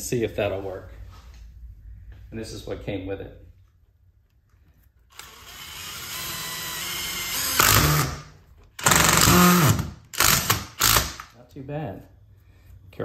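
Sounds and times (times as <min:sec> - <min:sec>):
cordless driver motor whirring: 0:05.1 - 0:08.2.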